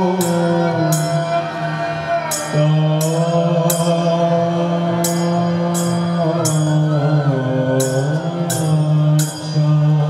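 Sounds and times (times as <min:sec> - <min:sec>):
group chanting: 0:00.0 - 0:10.0
small hand cymbals striking: 0:00.0 - 0:10.0.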